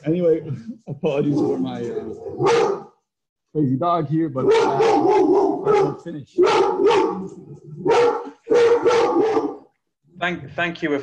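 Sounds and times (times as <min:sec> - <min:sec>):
dog barking: 0:02.2 - 0:03.0, 0:04.4 - 0:09.7.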